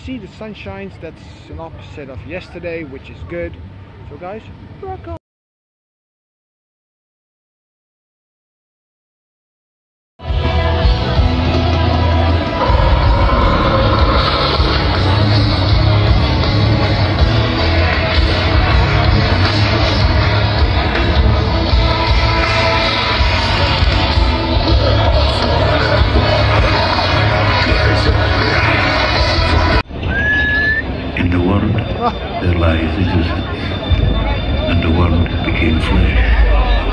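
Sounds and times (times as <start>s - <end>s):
heavy metal band playing live: 10.2s - 30.0s.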